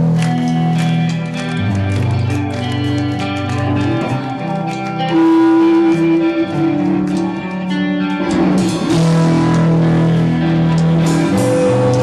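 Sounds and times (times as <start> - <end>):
electric guitar long held note: 0.0 - 12.0
live band playing: 0.0 - 12.0.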